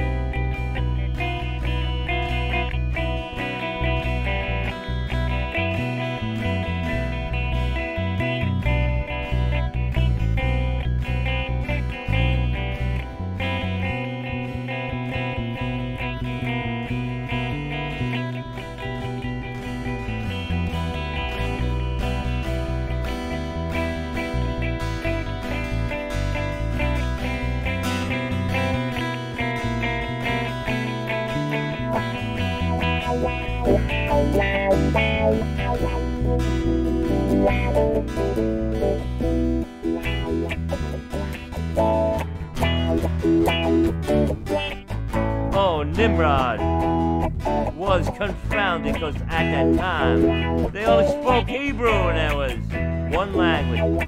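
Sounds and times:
bass line: 0.0 - 54.0
guitars strummed and picked: 0.0 - 54.0
steady beat: 13.4 - 54.0.

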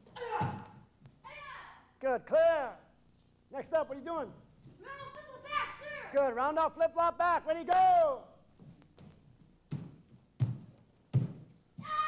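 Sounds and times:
dull thuds on padded mats: 8.6 - 12.0.

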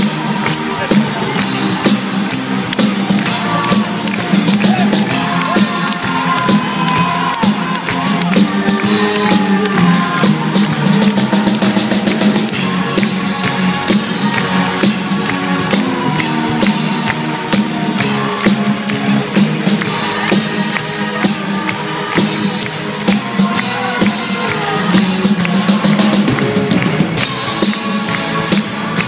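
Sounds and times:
live band playing loudly: 0.0 - 29.0.

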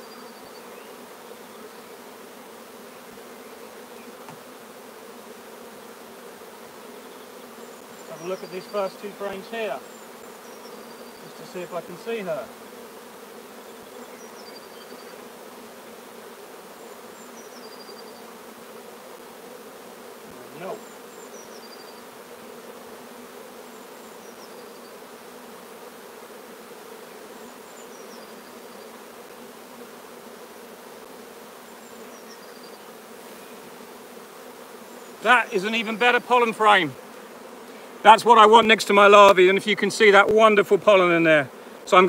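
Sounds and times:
bees humming: 0.0 - 42.0.

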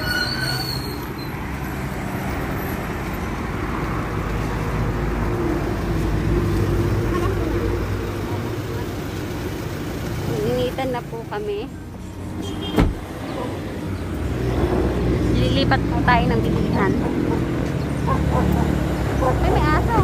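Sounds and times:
car engine and tyres rumbling: 0.0 - 20.0.

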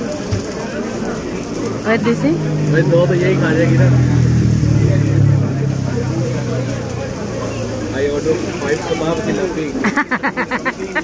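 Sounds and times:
vehicle engine running: 0.0 - 9.8
chatter of voices: 0.0 - 11.0.

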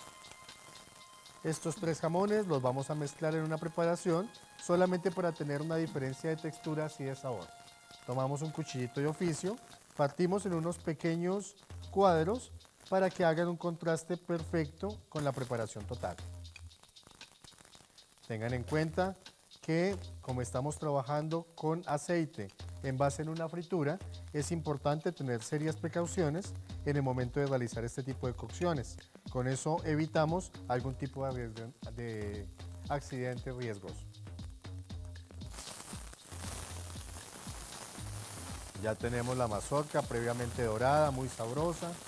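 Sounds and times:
corn frying in oil: 0.0 - 42.0
music with bass beat: 0.0 - 42.0.

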